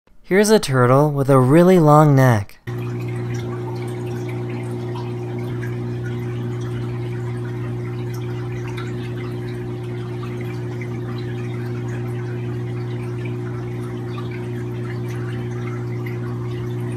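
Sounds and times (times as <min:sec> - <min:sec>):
aquarium pump humming: 0:00.2 - 0:16.9
water trickling and fizzing: 0:02.7 - 0:16.9.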